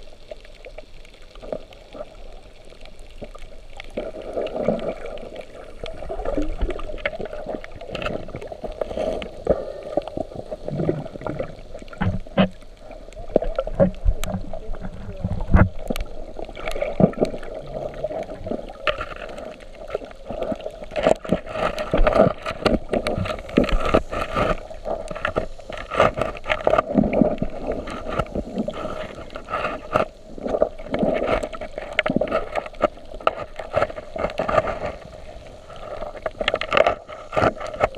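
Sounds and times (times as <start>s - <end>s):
muffled underwater rumble: 0.0s - 37.9s
sharp underwater clicks: 2.4s - 35.0s.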